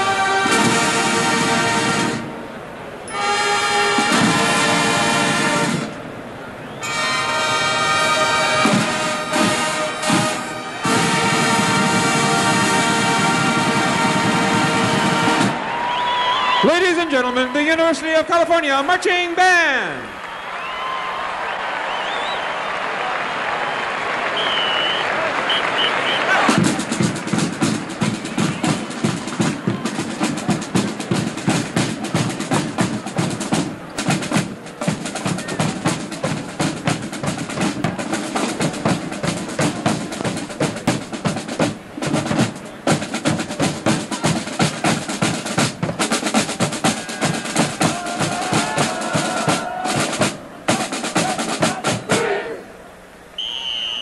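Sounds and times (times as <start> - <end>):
stadium crowd cheering and applauding: 6.3 - 41.2, 43.5 - 54.0
snare drum cadence: 24.4 - 52.4.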